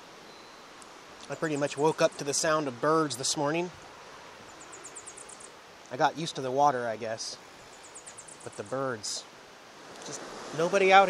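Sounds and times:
river rushing: 0.0s - 11.0s
songbird high-pitched trill: 0.2s - 2.5s, 4.5s - 5.6s.

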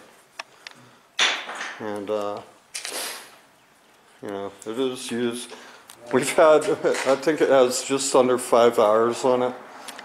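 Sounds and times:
man speaking: 4.2s - 9.6s.

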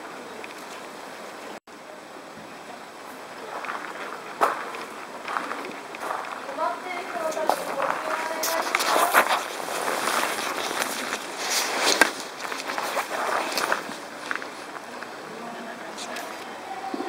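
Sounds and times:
footsteps on gravel: 3.4s - 15.2s.

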